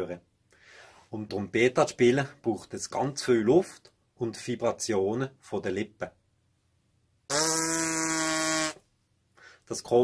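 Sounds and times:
trumpeter buzzing lips: 7.3 - 8.8.

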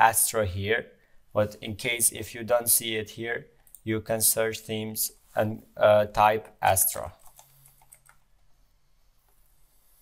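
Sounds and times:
computer keyboard typing: 7.2 - 8.3.

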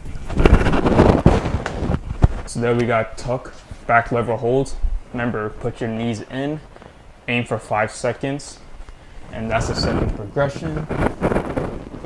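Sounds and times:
body thumps and feet landing: 0.3 - 2.4.

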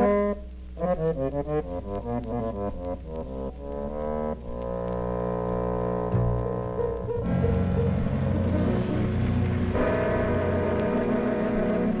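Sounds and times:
jazz quartet sustained chords: 0.0 - 12.0.

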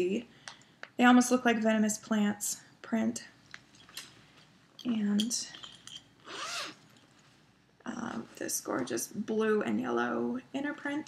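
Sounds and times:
zipper pulled open: 6.2 - 6.8.

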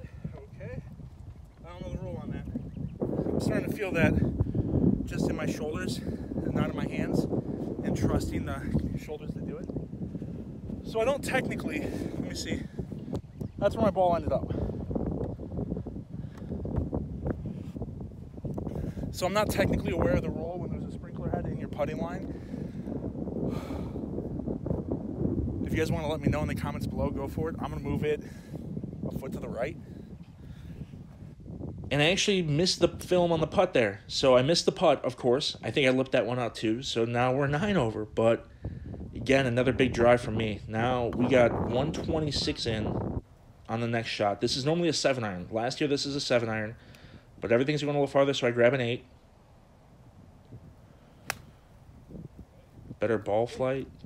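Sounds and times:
wind buffeting microphone: 0.0 - 54.0
golf club striking ball: 51.2 - 51.7.

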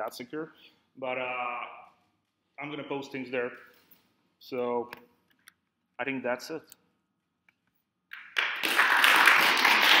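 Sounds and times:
audience applauding: 8.2 - 10.0.

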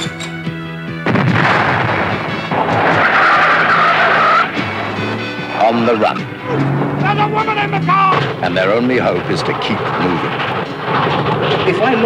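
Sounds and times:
car tyres squealing: 2.7 - 8.4
music score: 4.5 - 8.4.

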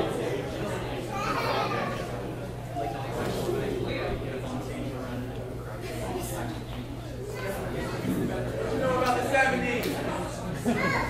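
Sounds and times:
chatter of young voices: 0.0 - 11.0.

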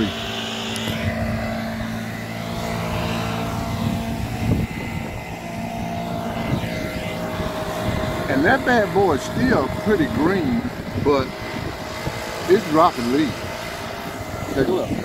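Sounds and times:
engine running steadily: 0.0 - 15.0.

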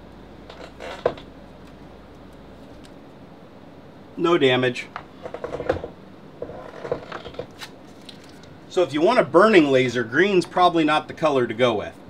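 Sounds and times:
room hiss: 0.0 - 6.7.

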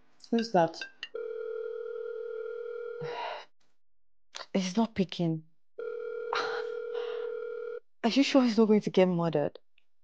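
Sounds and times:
telephone ringback tone: 1.1 - 3.1, 5.8 - 7.8.

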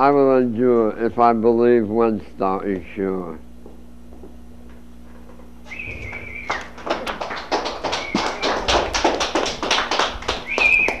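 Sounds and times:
high whistle-like tones: 5.7 - 6.8, 7.8 - 8.7, 10.4 - 11.0
people clapping: 5.8 - 11.0.

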